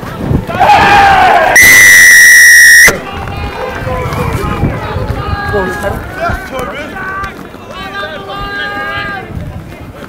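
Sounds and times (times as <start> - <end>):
players and spectators shouting: 0.4 - 9.4
referee's whistle blast: 1.6 - 3.0.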